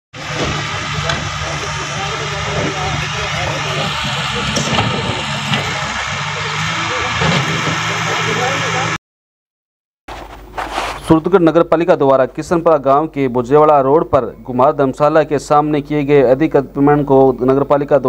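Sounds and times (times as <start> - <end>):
large vehicle engine running: 0.2 - 9.0
people talking: 0.2 - 9.0, 11.0 - 18.0.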